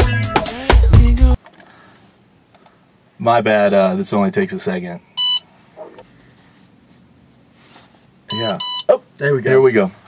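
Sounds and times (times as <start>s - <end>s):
short electronic beep: 8.3s - 9.0s.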